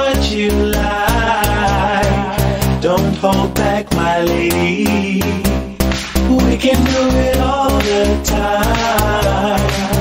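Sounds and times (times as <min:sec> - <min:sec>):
dance music: 0:00.0 - 0:10.0
melodic lead line: 0:00.0 - 0:10.0.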